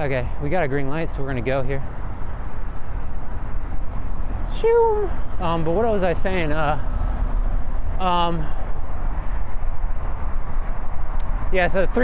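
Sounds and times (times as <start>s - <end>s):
bicycle tyre road noise: 0.0s - 12.0s
wind rushing over microphone: 1.4s - 12.0s.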